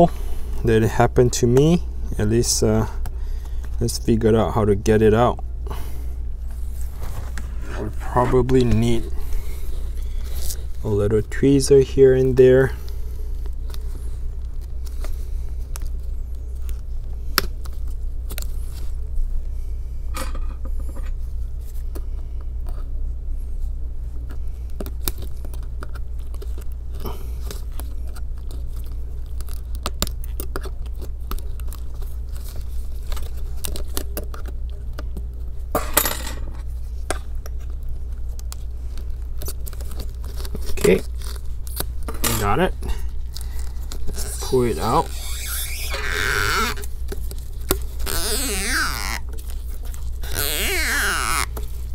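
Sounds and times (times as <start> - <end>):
steady low hum: 0.0 - 51.9.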